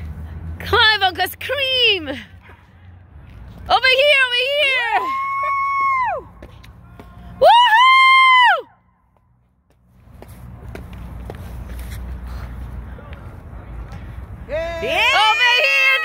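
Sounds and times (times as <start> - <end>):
high-pitched cheering whoops: 4.8 - 6.4, 7.4 - 8.8, 14.5 - 16.0.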